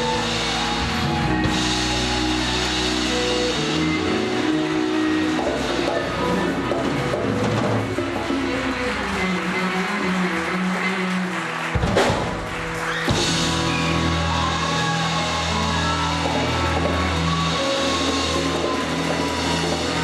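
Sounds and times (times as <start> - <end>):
live band playing: 0.0 - 20.0.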